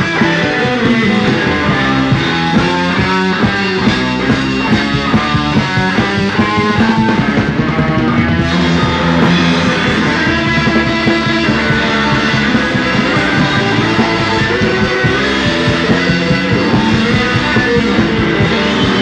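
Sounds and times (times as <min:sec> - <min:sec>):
blues rock band playing: 0:00.0 - 0:19.0
lead guitar run: 0:00.0 - 0:19.0.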